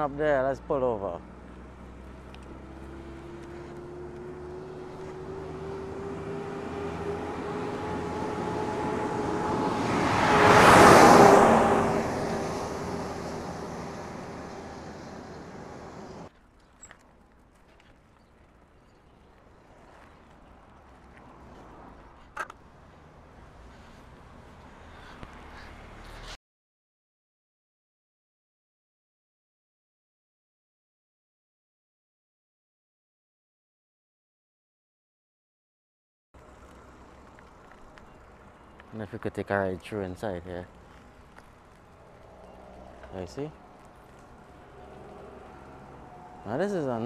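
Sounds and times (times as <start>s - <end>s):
truck driving past: 0.7s - 16.3s, 36.4s - 47.0s.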